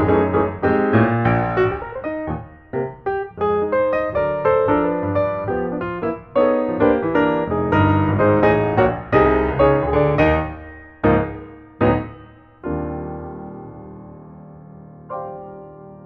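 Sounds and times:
solo piano music: 0.0s - 16.0s.

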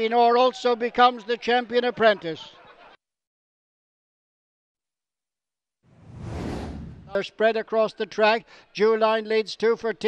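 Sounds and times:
whoosh transition: 5.9s - 7.2s.

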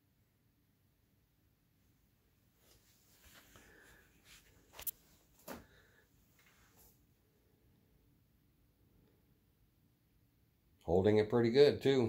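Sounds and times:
faint rustles: 2.5s - 7.0s.

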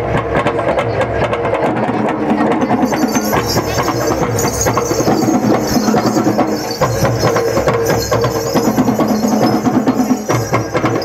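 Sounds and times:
tuned percussion ensemble playing: 0.0s - 11.0s.

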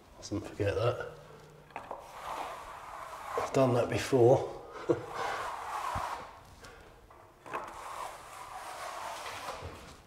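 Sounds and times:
trowel scraping wet plaster: 2.0s - 4.1s, 7.5s - 9.8s.

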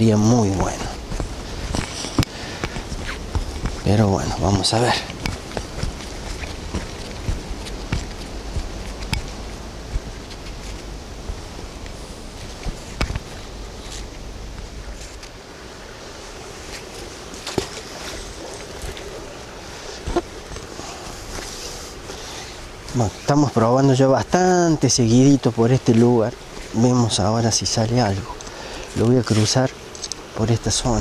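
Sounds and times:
wind rumble on microphone: 0.0s - 15.1s.

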